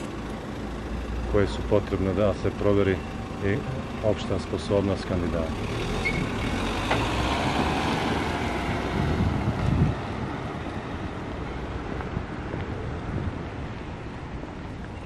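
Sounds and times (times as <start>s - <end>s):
car moving slowly: 0.0s - 15.0s
wind on microphone: 8.6s - 15.0s.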